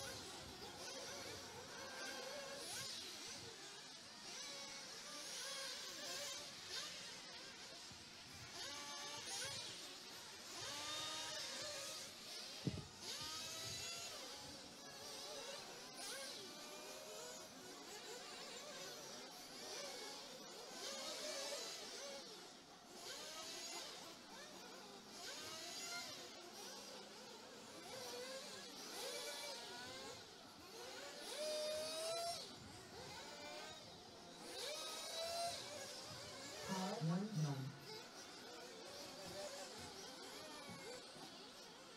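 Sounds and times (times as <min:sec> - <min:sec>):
rc car motors buzzing: 0:00.0 - 0:41.9.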